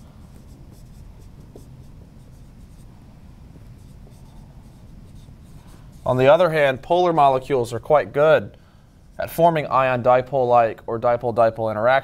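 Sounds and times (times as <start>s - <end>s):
marker scratching on whiteboard: 0.0s - 2.9s, 3.6s - 7.0s.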